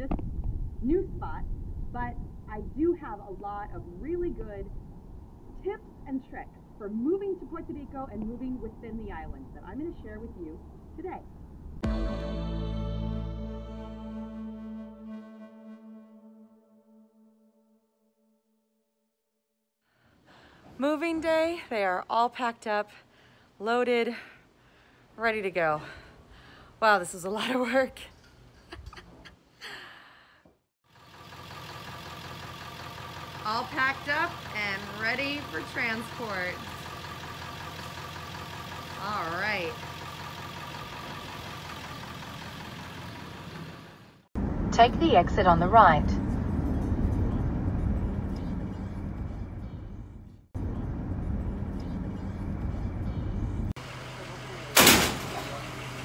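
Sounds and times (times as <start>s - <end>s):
breathy sigh: 29.6s - 30.6s
truck engine idling: 30.9s - 56.0s
loud sharp bang: 54.7s - 55.6s.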